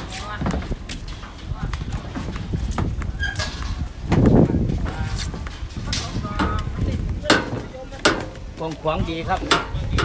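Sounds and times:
footsteps on concrete: 0:00.0 - 0:09.9
faint voices: 0:00.0 - 0:10.0
wind rumble on microphone: 0:00.0 - 0:10.0.

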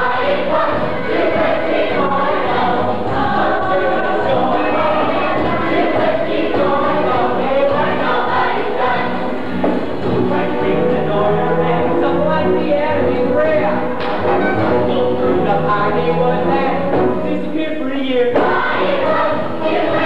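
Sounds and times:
chorus singing: 0:00.0 - 0:20.0
instrumental accompaniment: 0:00.0 - 0:20.0.

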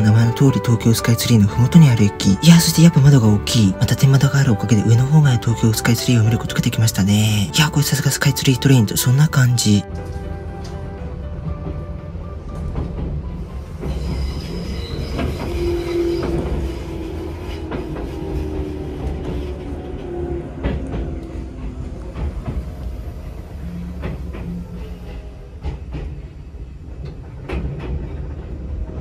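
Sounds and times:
train car low rumble: 0:00.0 - 0:29.0
wheels squealing: 0:13.6 - 0:20.8.

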